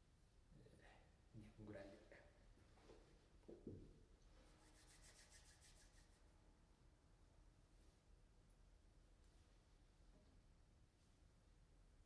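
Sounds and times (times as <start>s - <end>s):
hands rubbing together: 4.6s - 6.1s.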